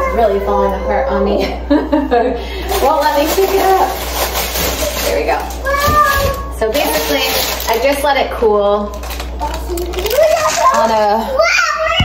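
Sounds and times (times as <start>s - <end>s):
people talking: 0.0s - 4.0s, 4.6s - 12.0s
child whining: 5.6s - 6.6s, 10.2s - 12.0s.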